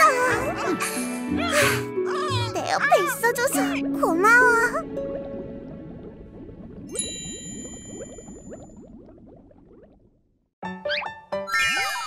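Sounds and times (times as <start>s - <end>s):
cartoon underwater bubbling blips: 3.3s - 10.2s.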